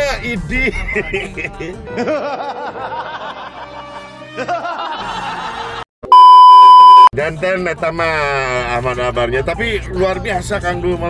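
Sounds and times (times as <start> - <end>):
men laughing heartily: 0.7 - 5.8
loud test-tone beep: 6.1 - 7.1.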